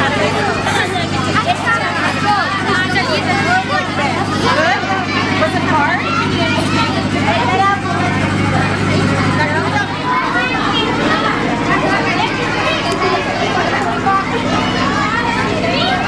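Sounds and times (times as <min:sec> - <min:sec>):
girls chattering and calling out: 0:00.0 - 0:16.0
low motor hum: 0:00.0 - 0:16.0.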